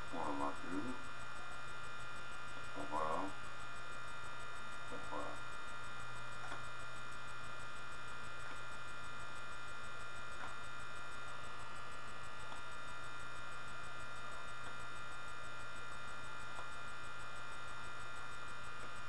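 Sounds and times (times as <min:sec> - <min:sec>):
high whine: 0:00.0 - 0:06.4
electrical mains hum: 0:00.0 - 0:19.0
faint soft ticks: 0:10.4 - 0:10.6.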